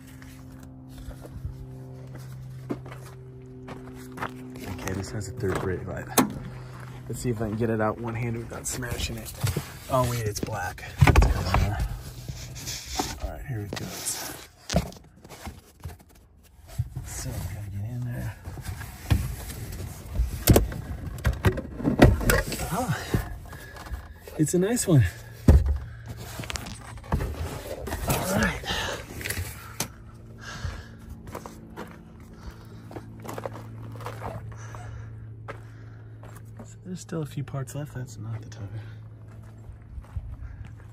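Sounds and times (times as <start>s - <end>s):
footsteps crunching on ground: 0.0s - 12.5s, 22.6s - 37.2s, 38.2s - 40.9s
steady low hum: 0.0s - 40.9s.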